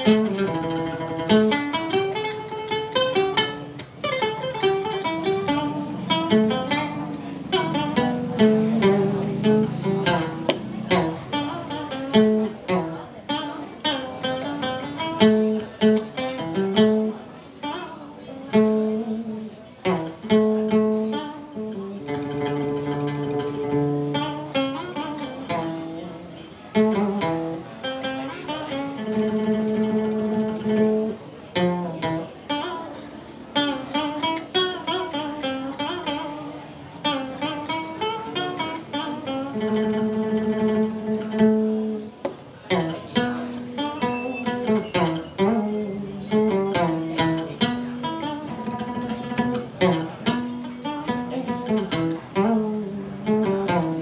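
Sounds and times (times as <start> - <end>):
plucked lute melody: 0.0 - 54.0.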